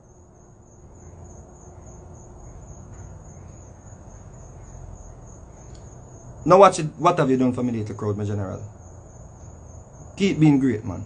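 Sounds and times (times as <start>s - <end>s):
cricket trill: 0.0s - 11.0s
low background hum: 0.0s - 11.0s.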